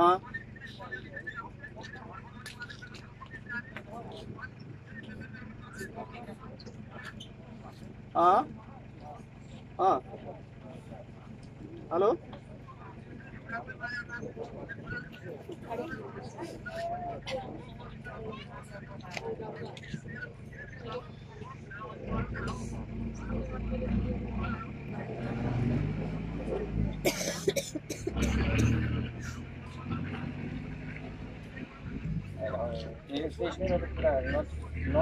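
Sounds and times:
people talking: 0:00.0 - 0:35.0.

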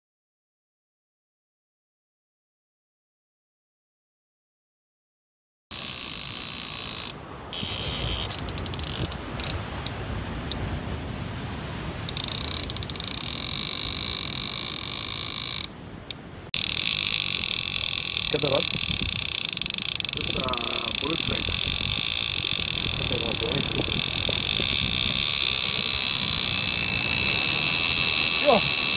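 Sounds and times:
fishing reel drag buzzing: 0:05.7 - 0:09.6, 0:12.1 - 0:15.7, 0:16.6 - 0:28.9.

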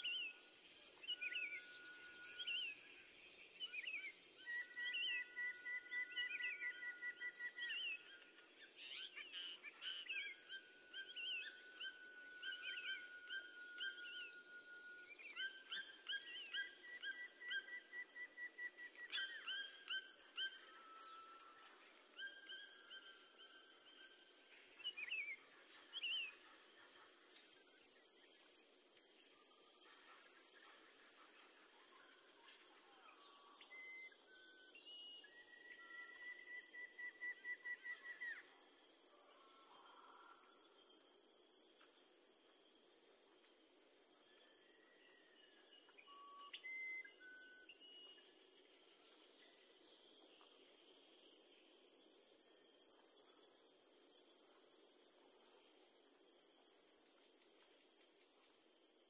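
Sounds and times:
insect chorus: 0:00.0 - 0:59.0.

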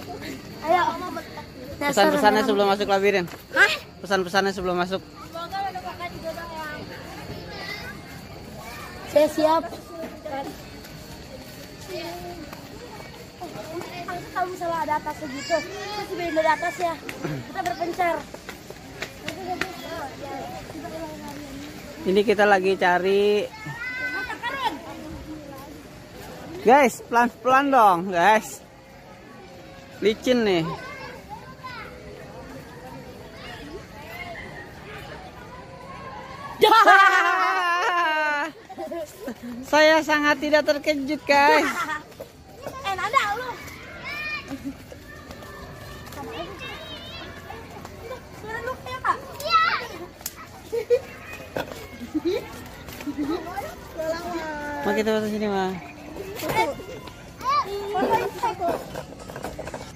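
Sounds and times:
children and adults chattering: 0:00.0 - 0:59.9
faint voices talking and calling: 0:00.0 - 0:59.9.

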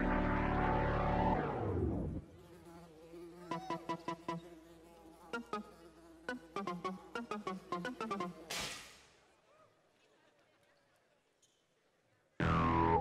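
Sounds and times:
buzzing electronic pitch glide: 0:03.5 - 0:08.6, 0:12.4 - 0:13.0
short plucked notes: 0:12.4 - 0:13.0.

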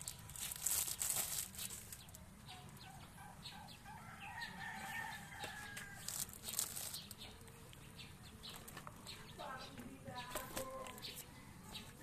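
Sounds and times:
plastic bags crinkling: 0:00.0 - 0:02.2, 0:05.9 - 0:07.2
rooster crowing: 0:03.8 - 0:06.3.

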